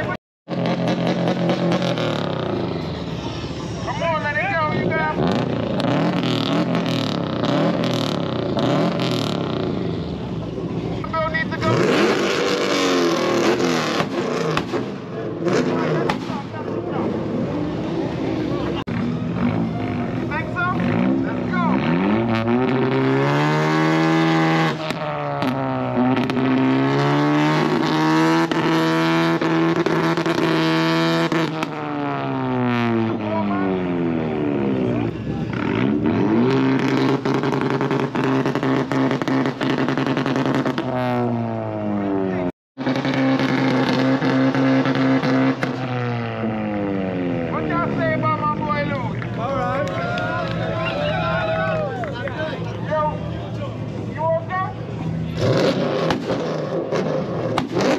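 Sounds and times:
car engines revving: 0:00.0 - 0:57.9.

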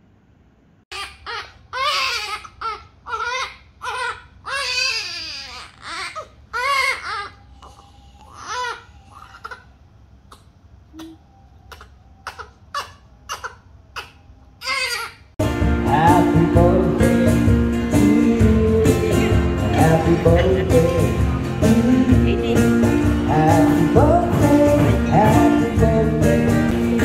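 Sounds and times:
newborn baby crying: 0:00.9 - 0:15.4.

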